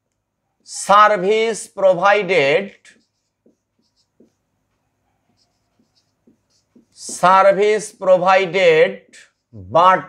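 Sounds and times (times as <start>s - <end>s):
marker on whiteboard: 0.2s - 10.0s
man speaking: 0.7s - 3.1s, 7.0s - 10.0s.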